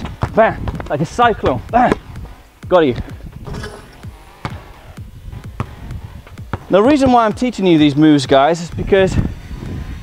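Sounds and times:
basketball bouncing on stone paving: 0.0s - 2.2s, 3.3s - 7.4s
faint music: 0.0s - 10.0s.

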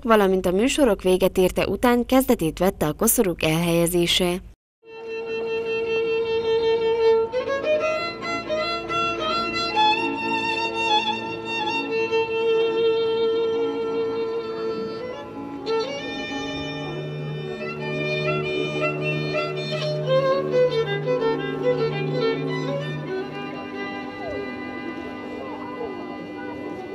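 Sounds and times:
slow violin melody: 4.8s - 26.9s
lower bowed sustained notes: 5.2s - 26.9s.

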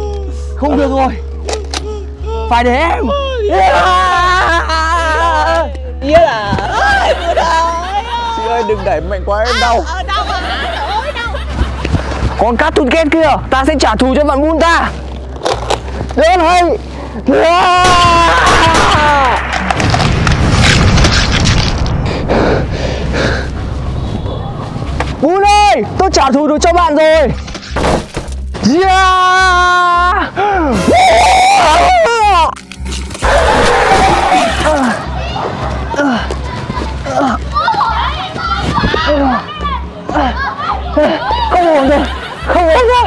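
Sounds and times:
excited voices calling out: 1.5s - 11.4s, 33.2s - 43.0s
explosion sound effect: 18.4s - 24.9s
person shouting: 28.7s - 32.5s.

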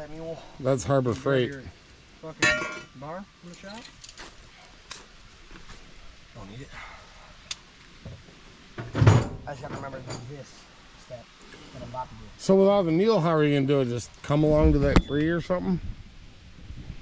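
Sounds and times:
light metallic clicks and clinks: 2.4s - 4.3s.

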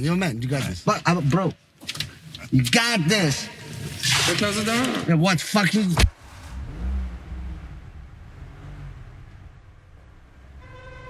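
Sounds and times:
car engine pulling away: 6.1s - 10.6s.

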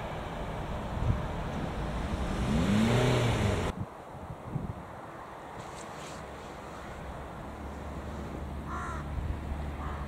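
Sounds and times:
car engine passing: 0.0s - 3.7s
cars driving over crossing: 0.0s - 3.8s.

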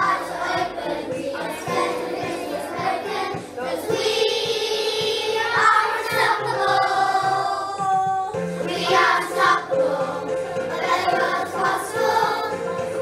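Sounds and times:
children's choir singing: 0.0s - 13.0s.

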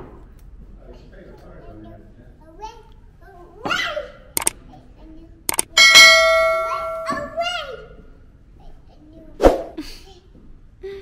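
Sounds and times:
double mouse click: 5.5s - 5.7s
bright bell ding: 5.6s - 7.4s.

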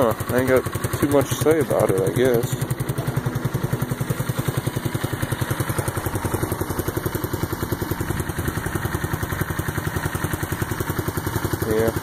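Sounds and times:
scooter engine idling: 0.0s - 12.0s.

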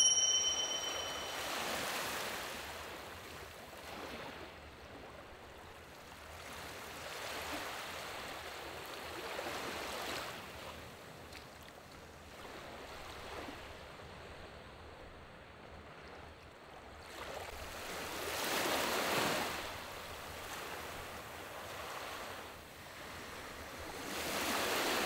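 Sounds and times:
small waves washing onto beach: 16.9s - 25.0s.

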